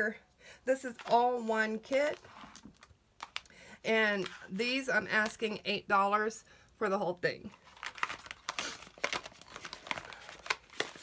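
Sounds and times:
packaging crinkling: 1.8 - 3.5, 7.6 - 11.0.

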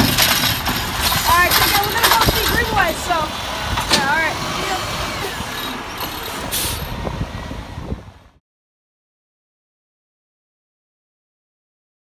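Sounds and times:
diesel truck engine running: 0.0 - 8.4.

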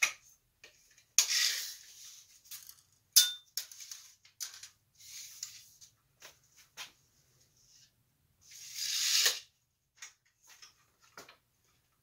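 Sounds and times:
glass clink ringing: 3.2 - 3.5
tape measure rasping out: 8.5 - 9.5.

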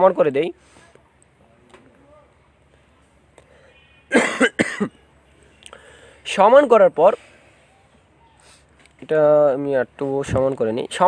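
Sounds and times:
man coughing: 4.1 - 5.0.

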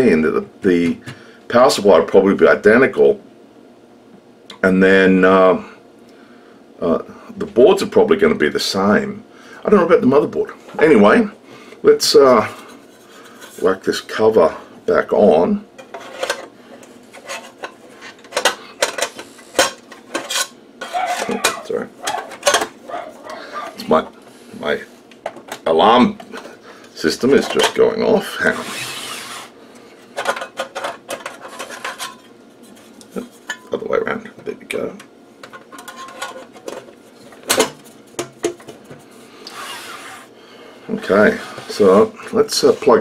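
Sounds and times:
metal cover clicking and scraping: 15.8 - 16.5, 17.1 - 22.7, 30.2 - 33.7, 35.4 - 38.9.

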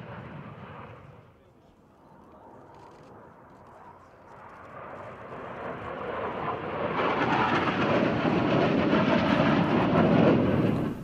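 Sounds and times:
jet fighters flying past: 0.0 - 11.0.

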